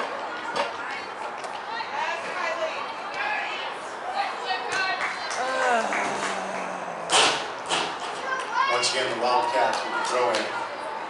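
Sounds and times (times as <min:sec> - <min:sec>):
girls calling and chattering: 0:05.0 - 0:08.6.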